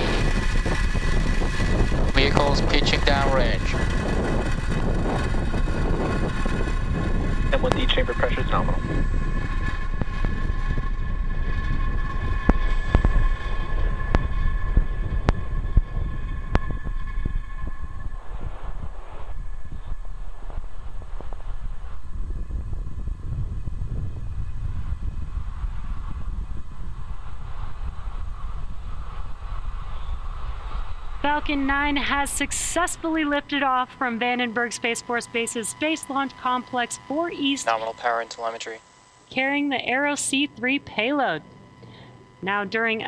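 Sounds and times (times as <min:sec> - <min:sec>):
steady high tones: 0:00.0 - 0:26.0, 0:29.7 - 0:43.0
rocket engine rumble with crackles: 0:00.0 - 0:43.0.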